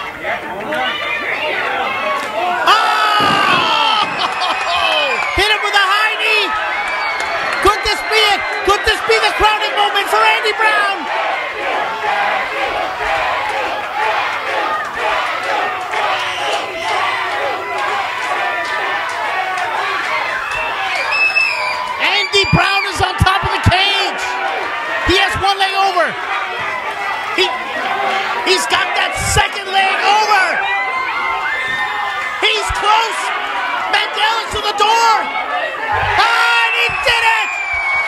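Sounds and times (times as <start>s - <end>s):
crowd cheering and shouting: 0.0s - 38.0s
individual loud yells: 2.5s - 11.0s.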